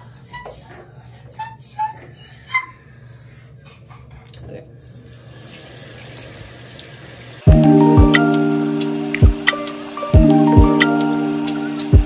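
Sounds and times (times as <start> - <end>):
tap water running into sink: 5.3 - 12.0
music with sustained chords: 7.5 - 12.0.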